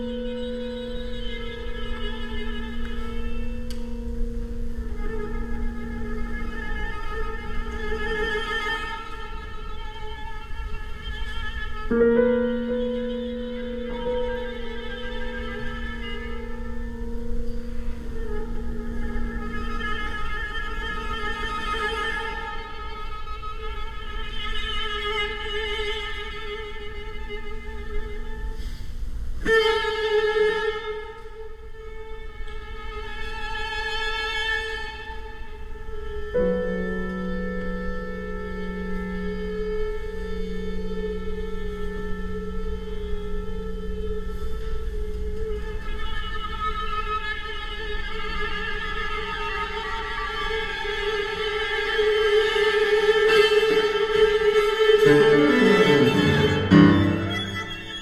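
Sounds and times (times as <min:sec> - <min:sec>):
string quartet bowing chords: 0:00.0 - 0:11.0, 0:49.2 - 0:58.0.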